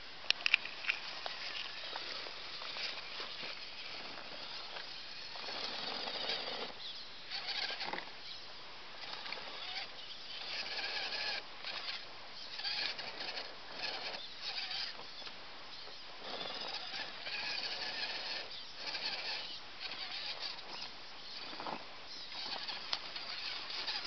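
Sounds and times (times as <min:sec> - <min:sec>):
toy car motor whining: 0:00.8 - 0:08.4, 0:09.0 - 0:24.0.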